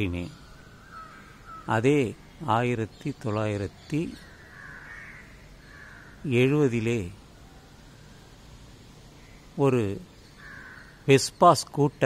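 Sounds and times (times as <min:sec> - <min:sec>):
crow cawing: 0:00.7 - 0:01.8, 0:04.2 - 0:06.3, 0:10.4 - 0:11.1.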